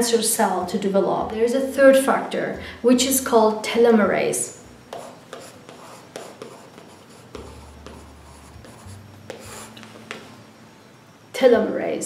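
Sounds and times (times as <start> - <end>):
chalk scratching on blackboard: 4.9 - 10.4.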